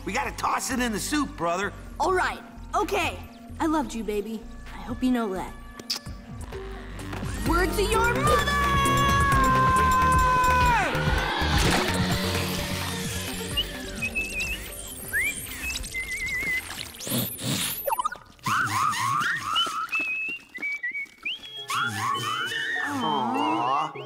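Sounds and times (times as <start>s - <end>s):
cartoon soundtrack music: 0.1s - 17.3s, 21.6s - 24.0s
high chirpy whistling: 13.0s - 24.0s.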